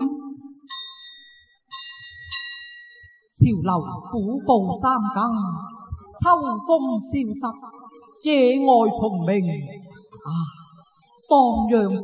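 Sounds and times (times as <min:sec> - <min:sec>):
small metal percussion strikes: 0:00.6 - 0:03.4.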